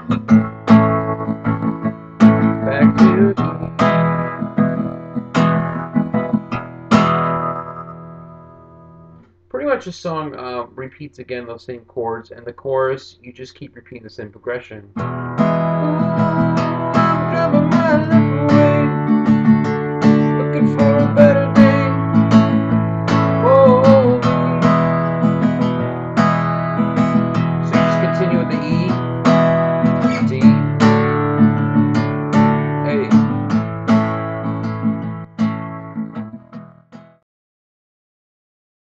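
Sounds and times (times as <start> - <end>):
acoustic guitar strumming: 0.0 - 11.0, 14.9 - 37.2.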